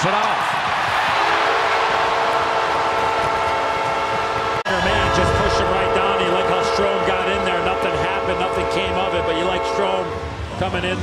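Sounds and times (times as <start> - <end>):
crowd cheering: 0.0 - 10.2
goal horn blaring: 1.4 - 10.4.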